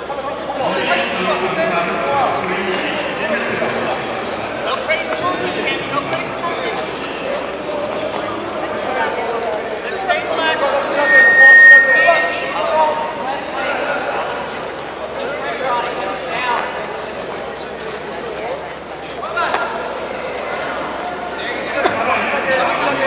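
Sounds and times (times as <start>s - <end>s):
voices calling out in hall: 0.0s - 23.0s
brief high steady tone: 10.4s - 13.8s.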